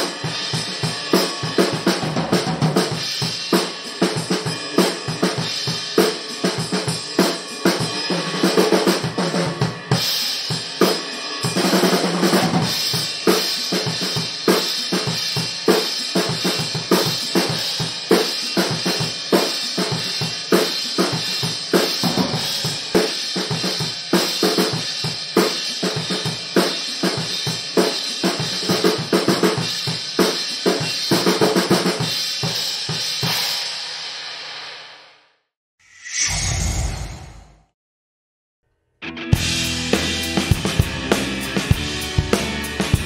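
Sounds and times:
drum kit playing steady beat: 0.0s - 34.8s, 39.4s - 43.0s.

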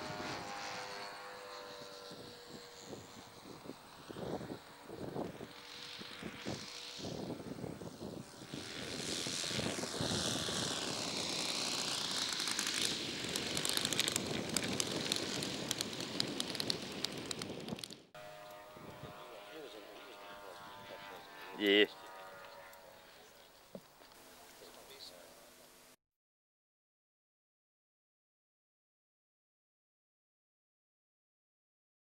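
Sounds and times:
model airplane engine flying past: 0.0s - 26.0s.

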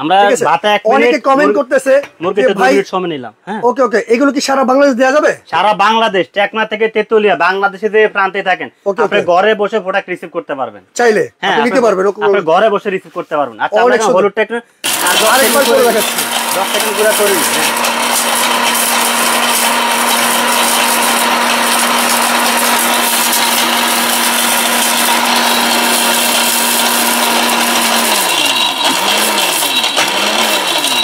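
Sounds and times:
mixer grinder motor whirring: 14.8s - 31.0s.

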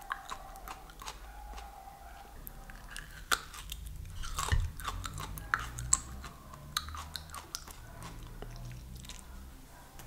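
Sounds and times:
crisp chewing crunches: 0.0s - 9.4s.

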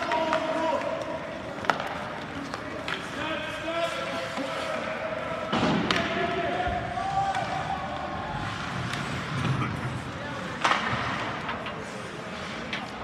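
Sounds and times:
spectators' voices: 0.0s - 13.0s.

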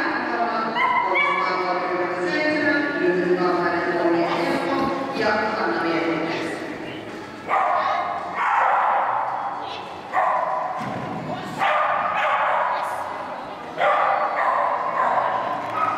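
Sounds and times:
dog barking in echoing hall: 0.7s - 1.6s, 7.5s - 10.8s, 11.5s - 15.9s.

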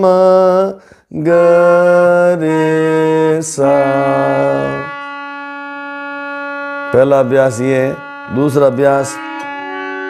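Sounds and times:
man singing: 0.0s - 5.0s, 6.9s - 9.5s
harmonium reed note: 1.2s - 10.0s.

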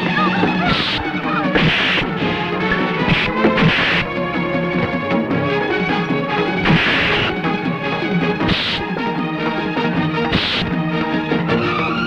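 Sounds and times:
fight scene music: 0.0s - 12.0s.

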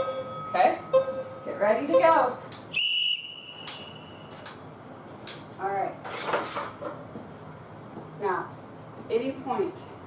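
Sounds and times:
interval timer beeping: 0.0s - 2.2s.

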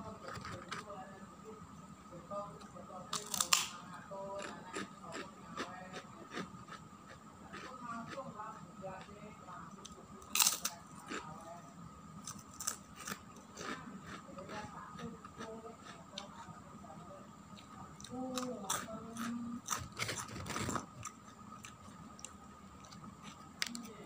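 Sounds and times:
crunching and chewing crackers: 3.1s - 8.4s, 9.8s - 11.6s, 12.2s - 16.5s, 17.6s - 24.0s.

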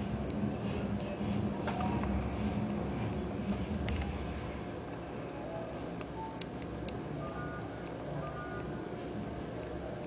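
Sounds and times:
low hum: 0.0s - 9.7s.

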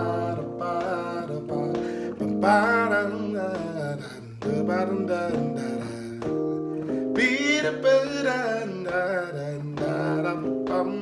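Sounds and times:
keyboard gospel chords: 0.0s - 11.0s
man singing wordlessly: 0.0s - 11.0s.

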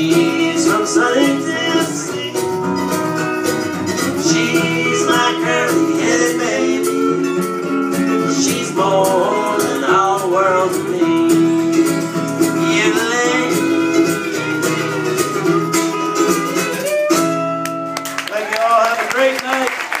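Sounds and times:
person singing: 0.0s - 3.0s, 3.8s - 17.1s
plucked acoustic guitar: 0.0s - 18.2s.

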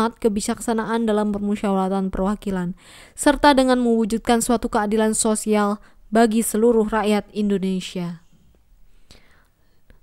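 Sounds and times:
person speaking: 0.0s - 8.3s
faint breath: 2.8s - 3.2s, 8.4s - 10.0s.

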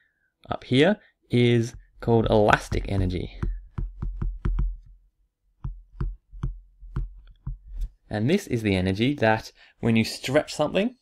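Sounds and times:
pen tapping on writing surface: 2.7s - 4.9s, 5.6s - 7.9s.

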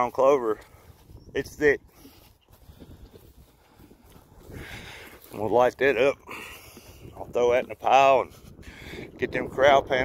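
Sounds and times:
footsteps through grass: 0.0s - 8.7s.

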